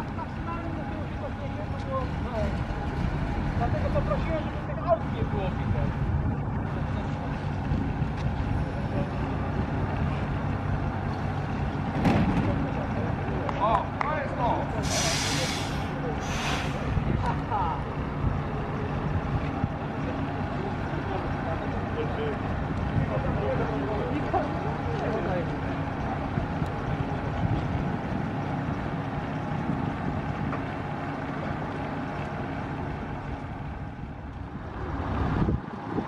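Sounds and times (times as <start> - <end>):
bus diesel engine running: 0.0 - 36.0
air brake hisses: 14.8 - 16.9.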